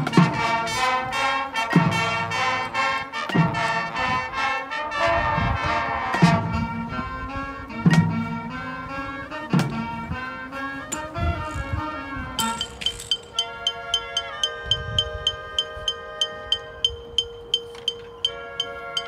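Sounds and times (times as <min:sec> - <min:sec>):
brass sustained chords: 0:00.0 - 0:17.2, 0:18.3 - 0:19.0.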